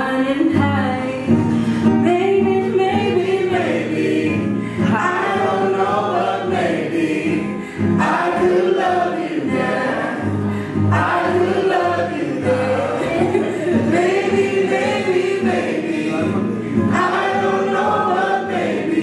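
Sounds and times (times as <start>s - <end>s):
woman singing slow melody: 0.0s - 5.8s
strummed nylon-string guitar: 0.0s - 19.0s.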